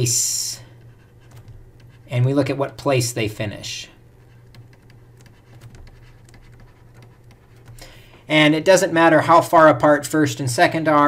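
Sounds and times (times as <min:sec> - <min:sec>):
low steady hum: 0:00.0 - 0:11.0
stylus tapping on tablet screen: 0:04.2 - 0:08.2.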